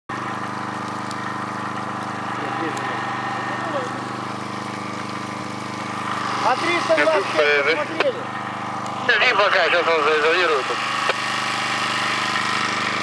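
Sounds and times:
engine running steadily: 0:00.1 - 0:13.0.

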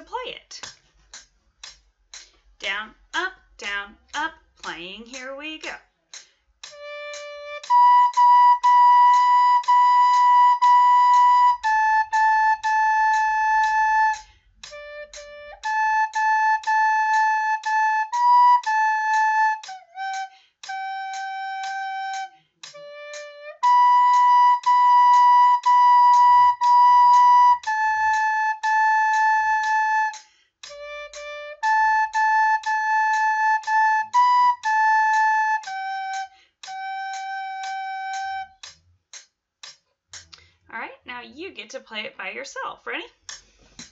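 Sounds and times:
metronome ticking: 0:00.1 - 0:40.6
recorder melody: 0:06.1 - 0:38.8.

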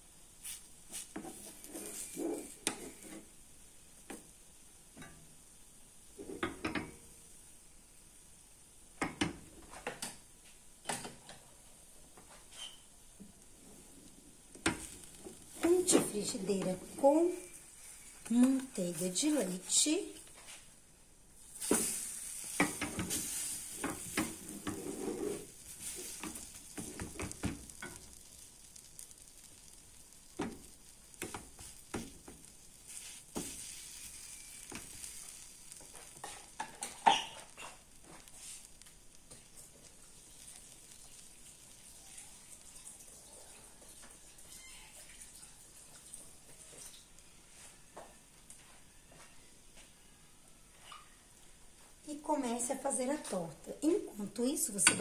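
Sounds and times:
batter sizzling in a frying pan: 0:00.0 - 0:49.0, 0:50.0 - 0:55.0
utensil scraping a pan: 0:00.9 - 0:03.3, 0:21.6 - 0:28.1, 0:32.9 - 0:38.8.

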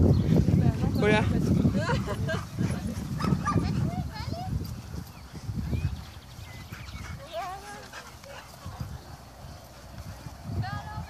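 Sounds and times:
dogs yipping and barking: 0:01.8 - 0:04.5, 0:05.2 - 0:11.0.

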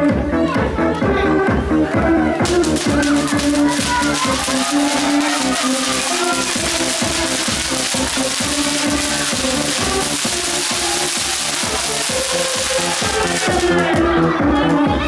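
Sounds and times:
electronic dance music: 0:02.0 - 0:14.0
fountain firework hissing and crackling: 0:02.4 - 0:13.9.

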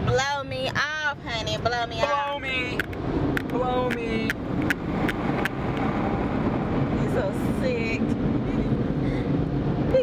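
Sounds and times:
car wash dryer blowers rumbling: 0:04.3 - 0:10.0.

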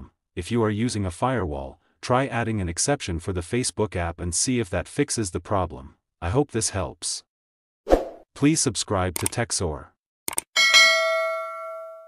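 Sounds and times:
mouse-click sound effects: 0:09.2 - 0:09.4, 0:10.3 - 0:10.5
notification bell ding: 0:10.6 - 0:12.0.

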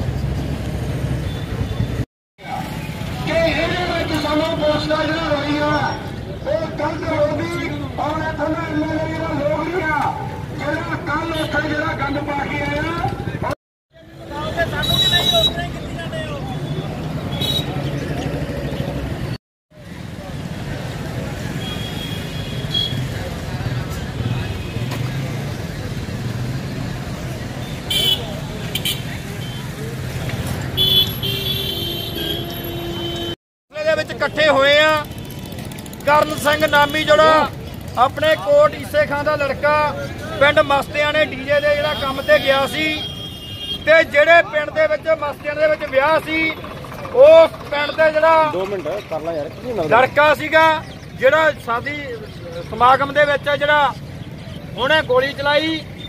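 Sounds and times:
street noise: 0:00.0 - 0:56.0
vehicle engine rumbling: 0:33.8 - 0:56.0
man talking: 0:36.0 - 0:43.1
engine rumble: 0:44.5 - 0:51.8.

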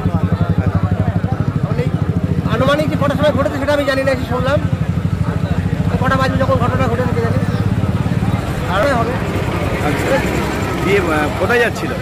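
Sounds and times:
engine idling: 0:00.0 - 0:12.0
faint voices: 0:00.0 - 0:12.0.

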